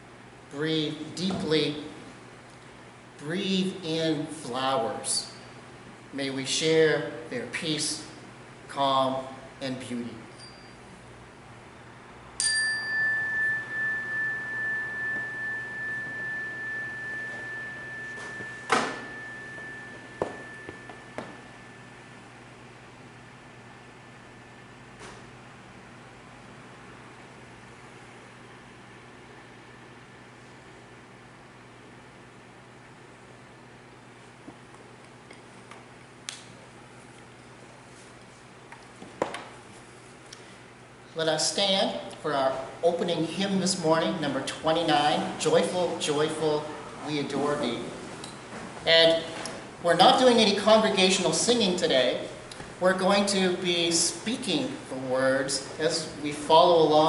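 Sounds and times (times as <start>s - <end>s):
low room hum: 0.0s - 57.0s
meditation bell ringing: 12.4s - 22.1s
sharp knock: 18.7s - 19.1s.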